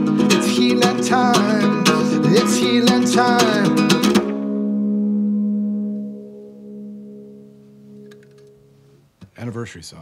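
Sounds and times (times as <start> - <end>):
ukulele chord strummed: 0.0 - 8.7.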